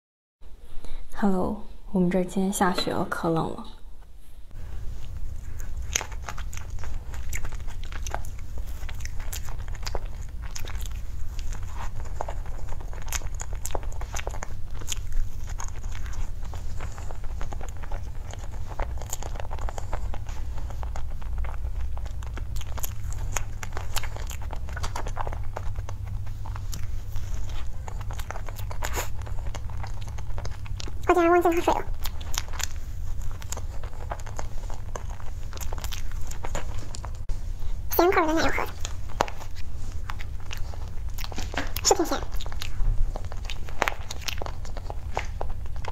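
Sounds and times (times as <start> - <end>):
steady low hum: 0.4 - 45.9
biting and chewing pastry: 4.6 - 45.9.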